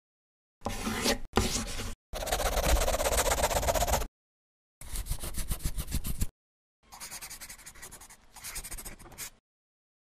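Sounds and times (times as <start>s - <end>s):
scratchy pen scribbling: 2.2s - 4.1s, 6.9s - 9.4s.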